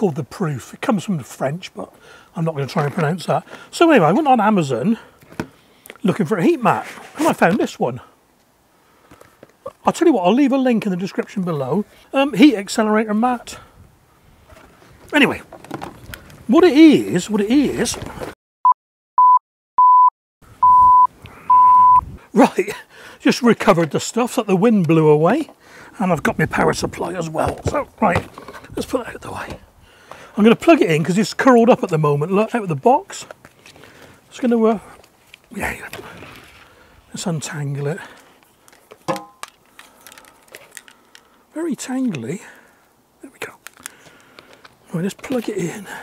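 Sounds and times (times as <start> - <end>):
high electronic beeps: 19.2 - 22.0.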